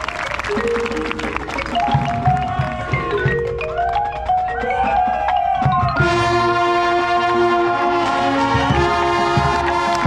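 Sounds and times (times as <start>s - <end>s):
mallet percussion passage: 0.0s - 10.0s
brass section sustained chord: 6.0s - 10.0s
low brass: 6.0s - 10.0s.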